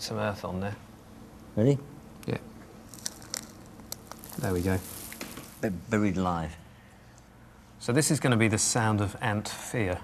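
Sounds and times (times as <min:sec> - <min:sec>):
soil grains crackling ticks: 0:02.9 - 0:05.7.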